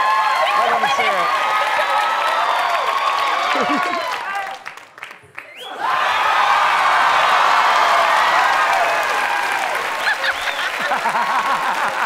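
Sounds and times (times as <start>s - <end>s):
audience applause: 0.0s - 12.0s.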